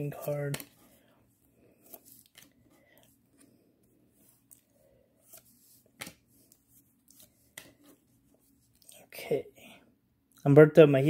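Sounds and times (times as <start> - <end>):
trading cards flicking and sliding: 0.0 - 1.0, 1.8 - 3.6, 4.2 - 8.9.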